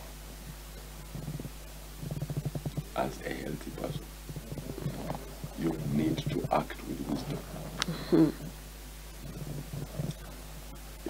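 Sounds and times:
low electrical hum: 0.0s - 11.0s
man speaking: 2.9s - 7.7s.

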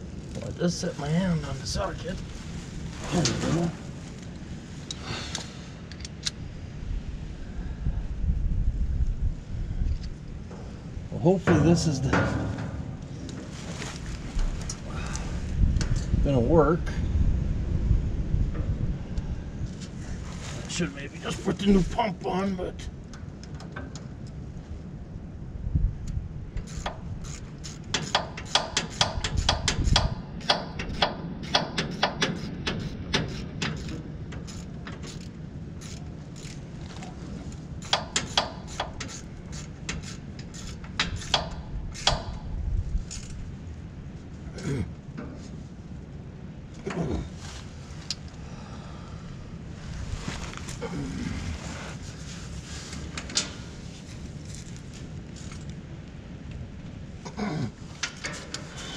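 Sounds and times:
hand tools clicking on metal: 26.6s - 36.6s, 37.8s - 42.4s.

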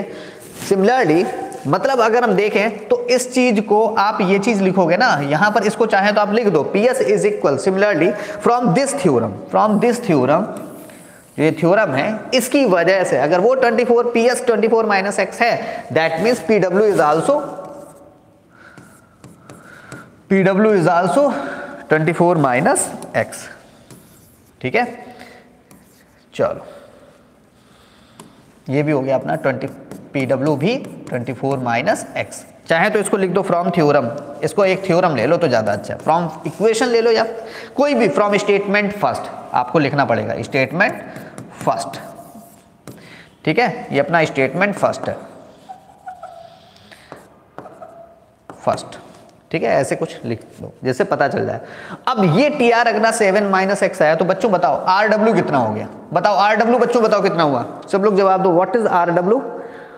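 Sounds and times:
pen scratching on glass: 18.8s - 19.7s, 25.7s - 26.1s
taps and strokes on glass screen: 29.4s - 31.6s, 45.7s - 49.3s.

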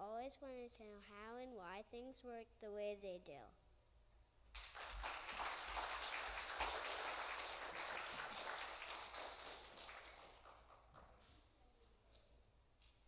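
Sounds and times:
audience applauding: 4.6s - 11.3s.

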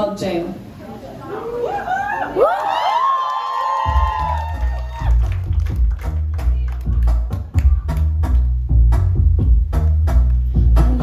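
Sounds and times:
crowd cheering: 1.3s - 7.8s
steady drum beat: 3.8s - 11.0s
heavy low bass: 3.9s - 11.0s.

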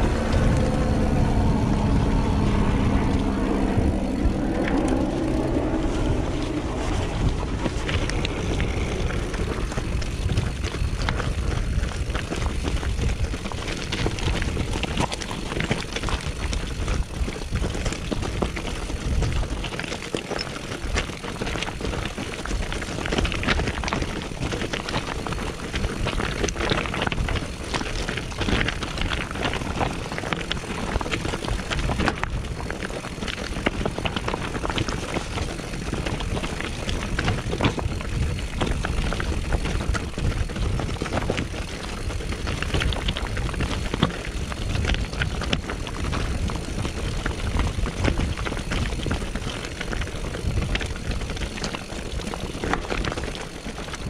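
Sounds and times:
bike clicks and rattles: 0.0s - 54.0s
tyres crunching on stones: 0.0s - 54.0s
wind rumbling on microphone: 0.0s - 54.0s.

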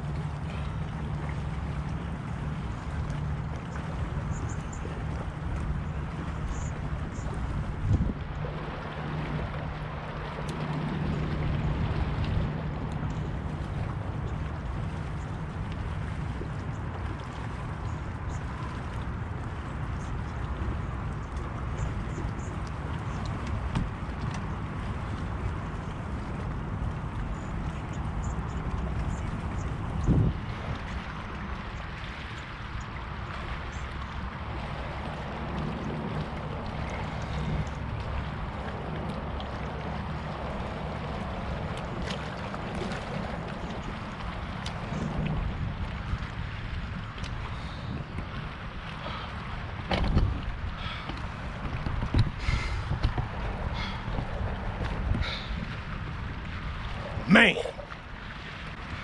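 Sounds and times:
water lapping at dock: 0.0s - 59.0s
wind on microphone: 0.0s - 59.0s.

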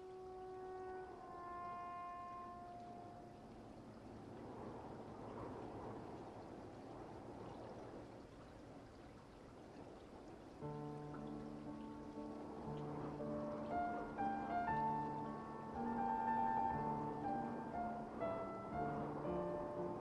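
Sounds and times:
held music notes: 0.0s - 3.8s, 10.7s - 20.0s
river water flowing: 0.0s - 20.0s.

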